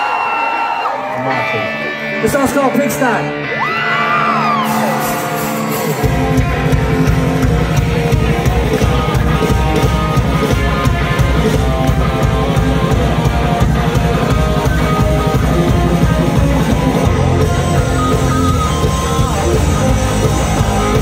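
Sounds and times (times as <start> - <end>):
live rock band playing: 1.2 - 21.0.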